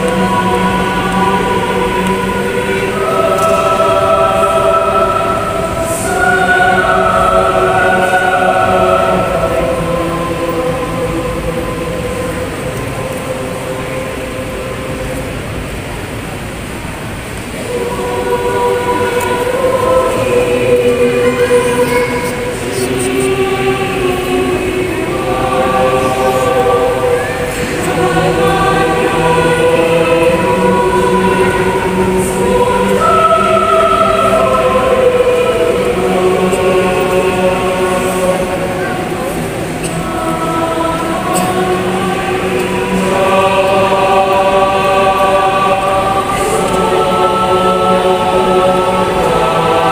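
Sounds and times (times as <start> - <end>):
choir holding soft chord: 0.0 - 49.9
hall noise: 0.0 - 49.9.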